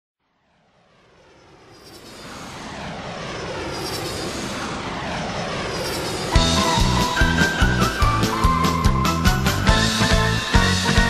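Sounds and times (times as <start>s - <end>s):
airplane engine: 0.8s - 11.0s.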